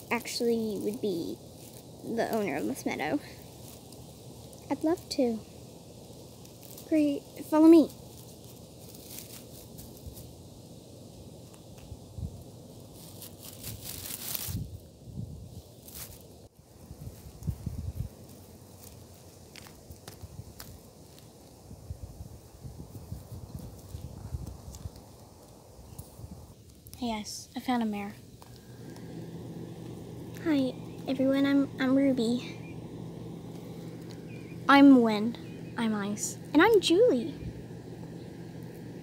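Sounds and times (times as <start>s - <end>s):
grass rustling: 0.0s - 39.0s.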